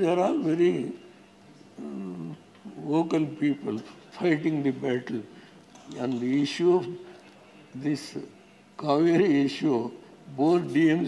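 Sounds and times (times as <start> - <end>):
man speaking: 0.0 - 1.0, 1.8 - 7.2, 7.8 - 11.0.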